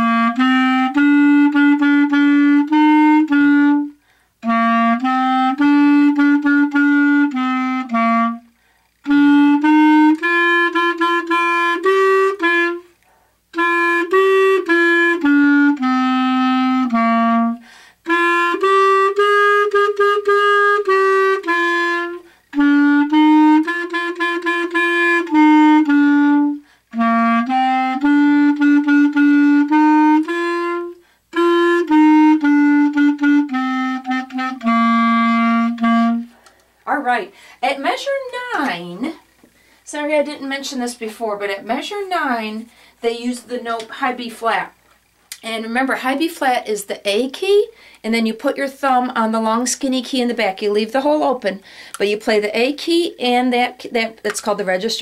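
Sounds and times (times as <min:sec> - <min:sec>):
clarinet melody: 0:00.0 - 0:39.4.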